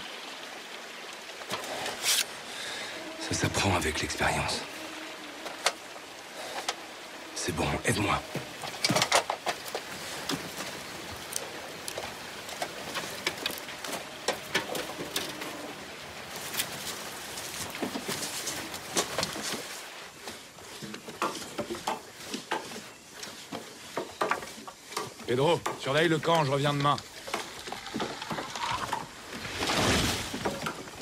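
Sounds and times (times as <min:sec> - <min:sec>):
rustling: 0:08.4 - 0:31.0.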